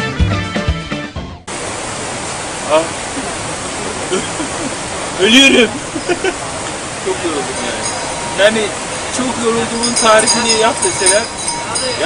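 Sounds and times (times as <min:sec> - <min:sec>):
background music: 0:00.0 - 0:01.5
steady outdoor rushing hiss: 0:01.5 - 0:12.0.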